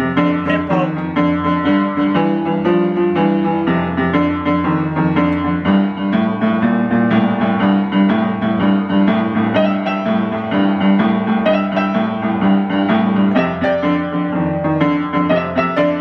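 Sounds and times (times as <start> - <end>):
upright piano playing: 0.0 - 16.0.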